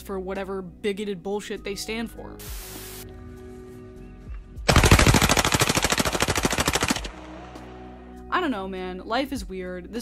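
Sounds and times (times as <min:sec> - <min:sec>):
automatic gunfire burst: 0:04.7 - 0:07.3.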